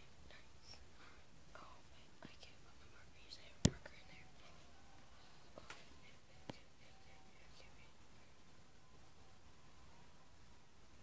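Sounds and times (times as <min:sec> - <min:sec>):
faint whispering: 0:00.0 - 0:08.4.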